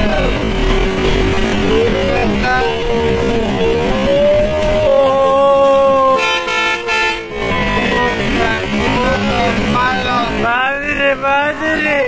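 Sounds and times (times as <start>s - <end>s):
bus horn blast: 6.1s - 7.7s.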